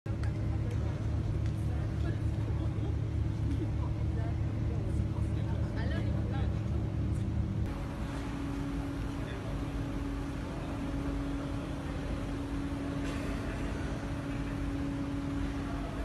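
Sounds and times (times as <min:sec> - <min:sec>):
low mechanical hum: 0:00.1 - 0:16.0
faint voices: 0:07.7 - 0:16.0.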